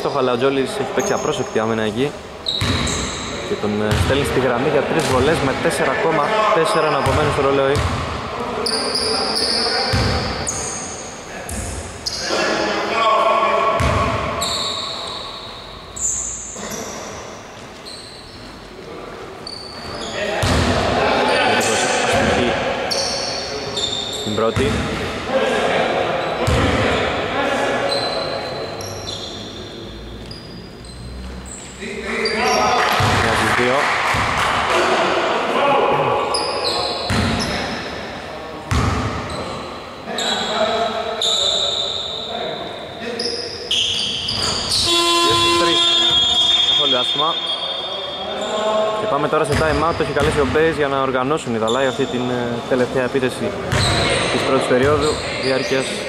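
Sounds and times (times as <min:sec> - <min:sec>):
echoing indistinct voices: 0:00.0 - 0:56.0
basketball bouncing on wooden floor: 0:07.1 - 0:08.0.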